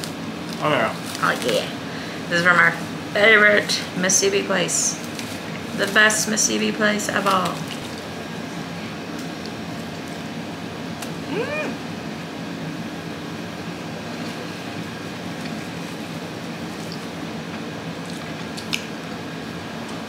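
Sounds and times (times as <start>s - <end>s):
room noise: 0.0s - 20.0s
person eating: 14.0s - 18.9s.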